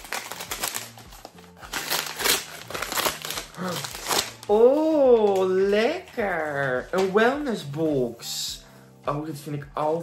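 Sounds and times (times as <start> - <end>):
wrapping paper crinkling: 0.0 - 7.7
soft background music: 0.0 - 10.0.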